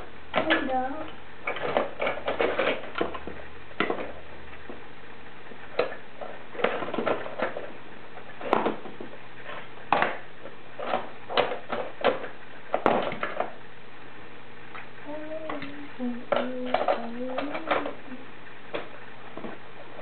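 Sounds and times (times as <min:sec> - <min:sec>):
plastic toys clacking: 0:01.4 - 0:04.2, 0:16.3 - 0:18.0
child making wavering vocal sound: 0:15.0 - 0:18.3.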